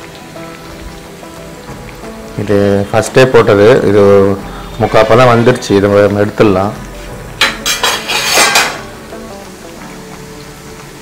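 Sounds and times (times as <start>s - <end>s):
faint background music: 0.0s - 11.0s
food deep-frying in oil: 0.0s - 11.0s.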